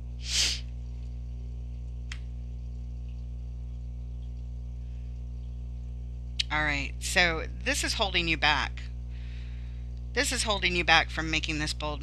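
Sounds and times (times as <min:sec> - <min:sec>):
steady low hum: 0:00.0 - 0:12.0
short breathy burst: 0:00.2 - 0:00.7.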